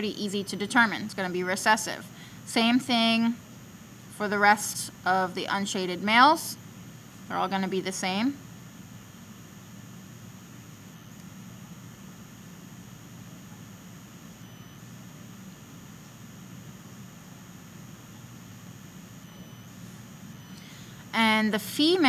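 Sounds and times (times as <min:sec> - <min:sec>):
low hum and hiss: 0:00.0 - 0:22.0.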